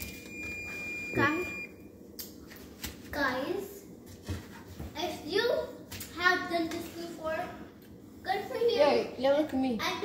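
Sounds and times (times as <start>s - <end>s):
kitchen timer tone: 0.0s - 1.7s.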